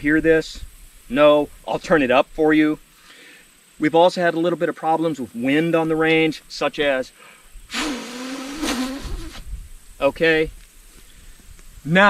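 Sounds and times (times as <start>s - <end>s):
man blowing through lips: 7.2s - 9.8s.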